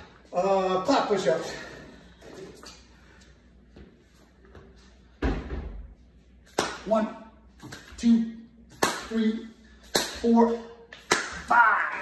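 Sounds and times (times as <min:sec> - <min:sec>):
hands clapping and smacking floor: 0:06.5 - 0:06.8, 0:08.7 - 0:09.1, 0:10.9 - 0:11.5.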